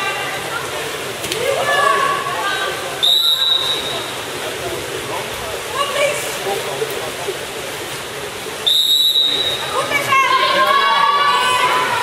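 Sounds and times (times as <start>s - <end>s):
voices: 0.0s - 12.0s
water splashing: 0.0s - 12.0s
referee's whistle blowing: 3.0s - 4.1s, 8.6s - 9.8s.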